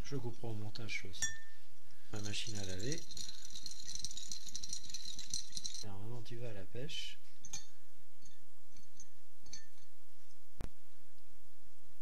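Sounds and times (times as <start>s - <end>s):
parts rattling in a glass jar: 2.1s - 6.0s, 7.4s - 10.0s.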